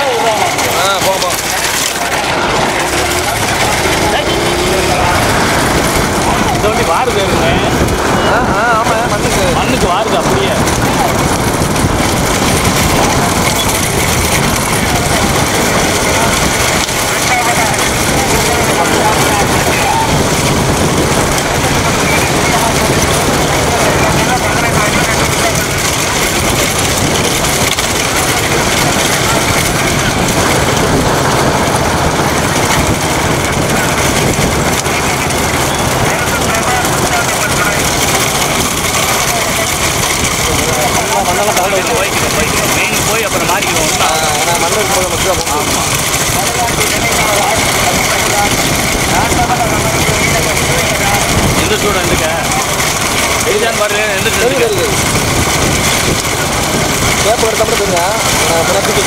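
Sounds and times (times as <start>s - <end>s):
men shouting: 0.0s - 11.4s, 14.8s - 27.6s
vehicle engine running: 0.0s - 59.0s
wind rush: 0.0s - 59.0s.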